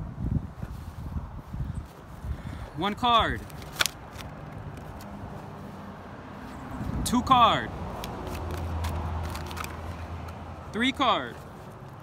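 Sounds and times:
cards clicking: 3.4s - 5.2s, 7.9s - 10.4s.

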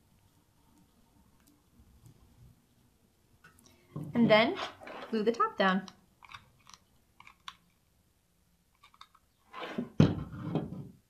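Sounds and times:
thunk on tabletop: 10.0s - 10.9s.

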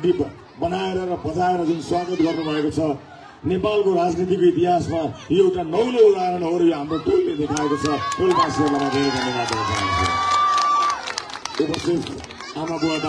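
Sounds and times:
crowd cheering and shouting: 0.0s - 3.0s, 6.3s - 13.0s
man speaking: 11.6s - 13.0s.

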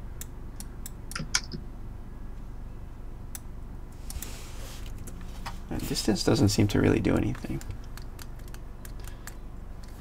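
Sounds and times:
low steady hum: 0.0s - 10.0s
keyboard and mouse clicks: 0.2s - 1.6s, 7.3s - 10.0s.

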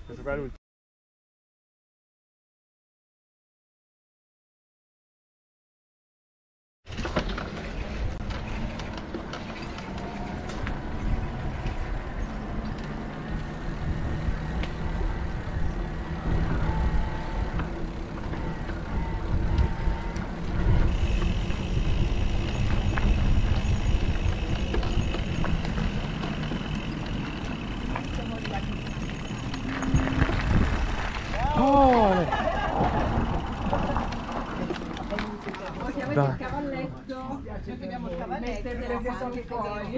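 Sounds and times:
bike tyre rumble: 6.9s - 36.6s
wind on microphone: 13.2s - 26.4s, 29.5s - 34.5s.

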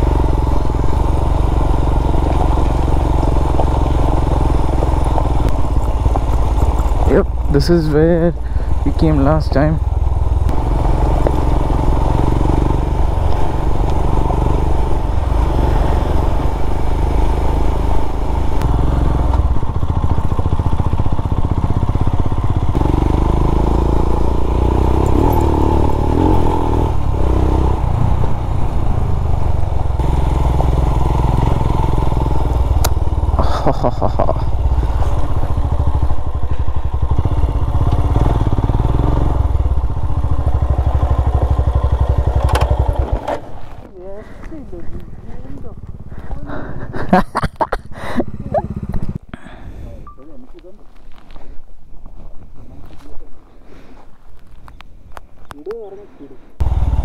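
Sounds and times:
motorcycle engine running: 0.0s - 51.3s, 56.6s - 57.0s.

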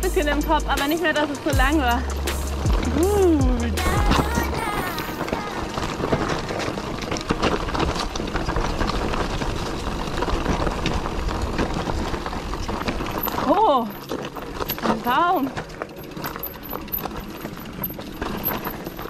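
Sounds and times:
bike rattling and clattering: 0.0s - 19.0s
tyres crunching over loose stones: 0.0s - 19.0s.

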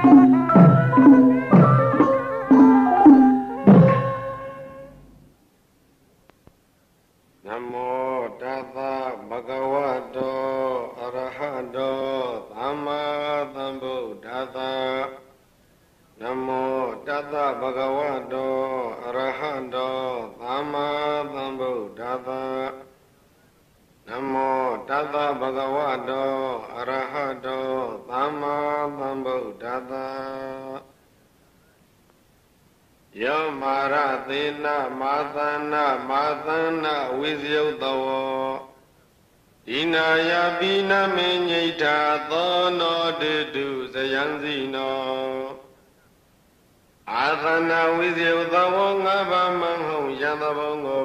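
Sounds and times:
man chanting: 7.4s - 15.4s, 16.2s - 23.0s, 24.1s - 31.0s, 33.2s - 38.8s, 39.7s - 45.7s, 47.1s - 51.0s.

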